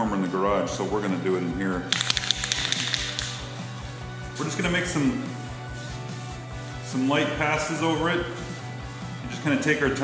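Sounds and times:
spray can rattling when shaken: 1.9 - 3.7.

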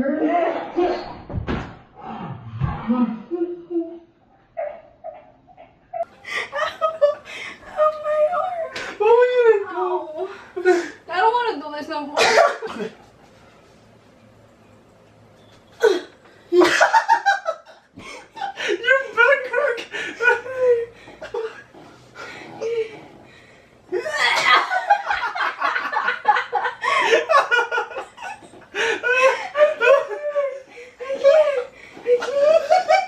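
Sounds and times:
woman's laughing whimper: 29.0 - 33.0.

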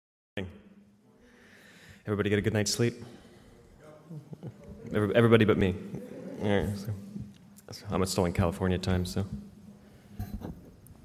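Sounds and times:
man's voice fragment: 3.8 - 9.4.

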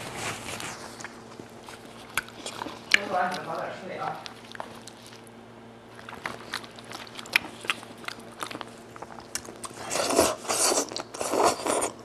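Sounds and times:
wet eating and sucking: 0.2 - 3.5, 4.2 - 12.0.

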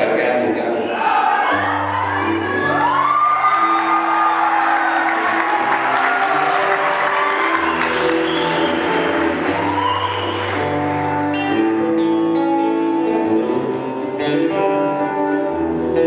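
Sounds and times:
audience cheering: 0.9 - 11.3
acoustic guitar playing: 1.5 - 16.0.

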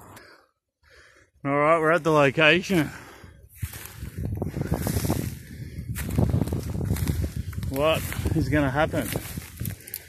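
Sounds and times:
footsteps crunching through dry leaves: 3.5 - 10.0.

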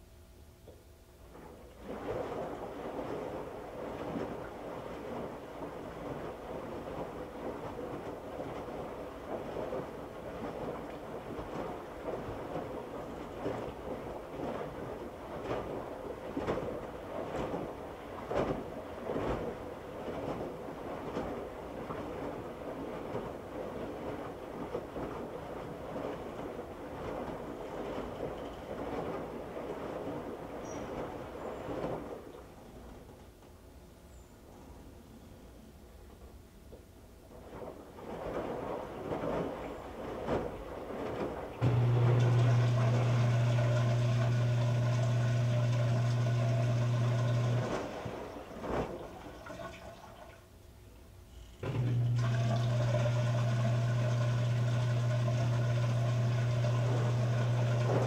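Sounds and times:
washing machine drum tumbling: 38.2 - 49.9, 51.6 - 58.0.

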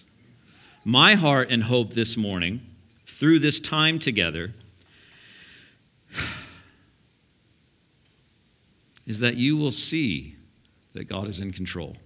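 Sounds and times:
man sighing: 6.1 - 6.8.

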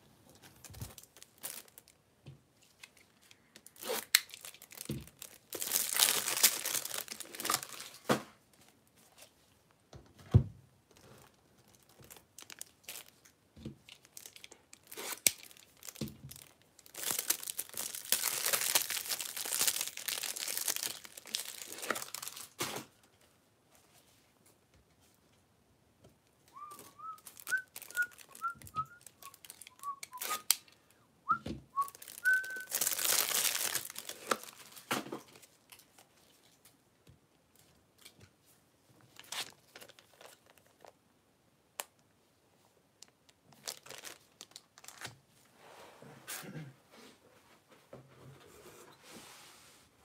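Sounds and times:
loud crinkling rustle: 3.7 - 8.1, 11.0 - 22.6, 26.7 - 30.5, 31.8 - 36.7, 43.5 - 45.1
person whistling quick notes: 26.6 - 30.5, 31.3 - 32.7.

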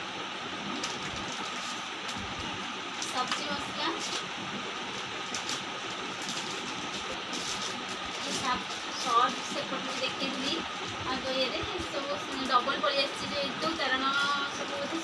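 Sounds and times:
plastic bag crinkling: 0.7 - 4.3, 4.9 - 11.0.

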